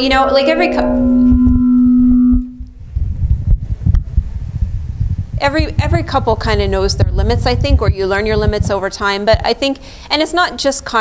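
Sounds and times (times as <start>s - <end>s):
microphone feedback ringing: 0.0s - 3.4s
low room rumble: 0.0s - 10.1s.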